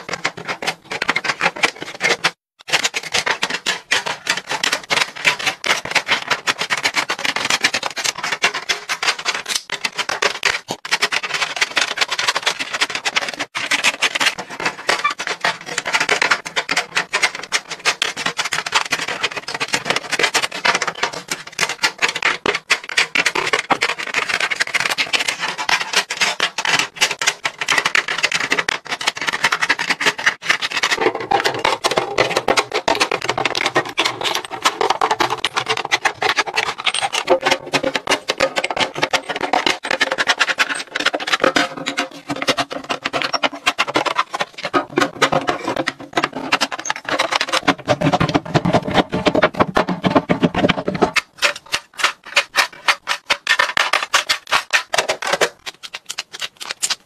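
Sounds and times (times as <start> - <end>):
plastic clacking on acrylic: 0.0 - 57.0.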